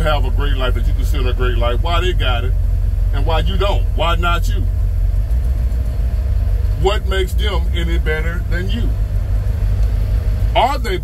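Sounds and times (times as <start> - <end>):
man speaking: 0.0 - 2.5, 3.2 - 4.7, 6.8 - 9.0, 10.6 - 11.0
vehicle rumble inside cab: 0.0 - 11.0.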